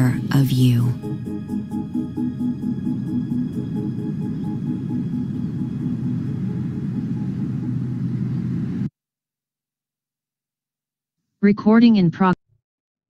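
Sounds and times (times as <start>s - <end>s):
deep rumbling soundtrack drone: 0.0s - 8.9s.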